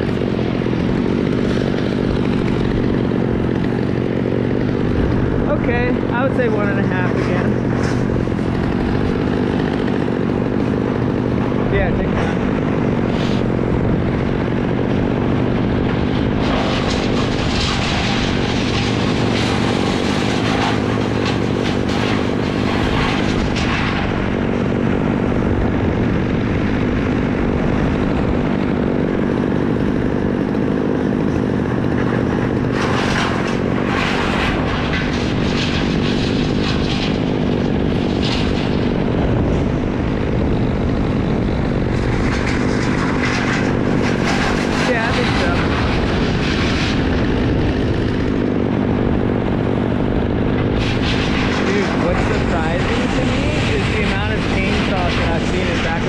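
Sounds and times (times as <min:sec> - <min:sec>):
engine droning: 0:00.0 - 0:56.0
crackling rustling noise: 0:16.4 - 0:24.2, 0:30.8 - 0:49.3, 0:50.7 - 0:54.5.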